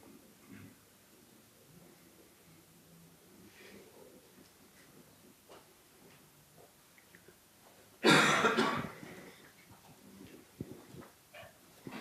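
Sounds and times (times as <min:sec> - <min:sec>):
loud cough: 0:08.0 - 0:09.0.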